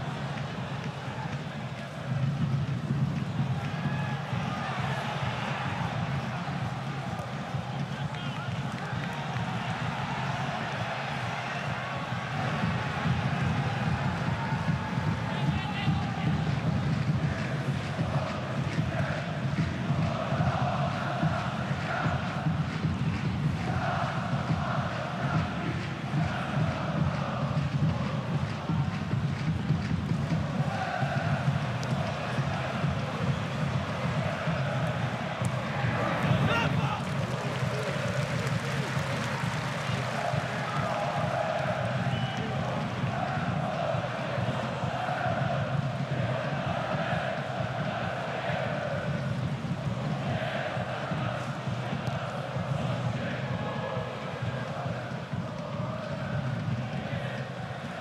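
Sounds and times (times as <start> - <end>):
crowd chanting: 3.6 - 29.2, 30.2 - 58.0.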